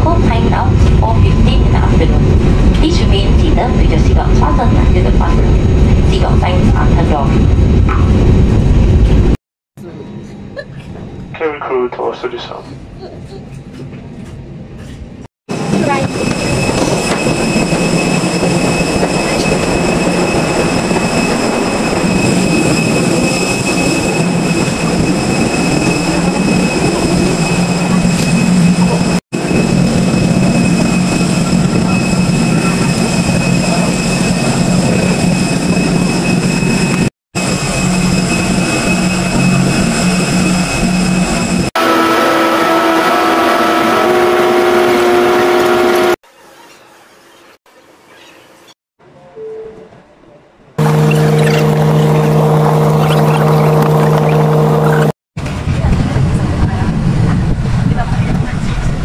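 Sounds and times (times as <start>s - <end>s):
high machinery whine: 15.5s - 46.2s, 50.8s - 58.0s
low engine hum: 50.8s - 59.0s.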